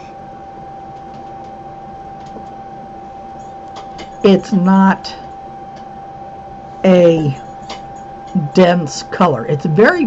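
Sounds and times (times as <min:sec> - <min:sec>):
constant high whine: 0:00.0 - 0:10.0.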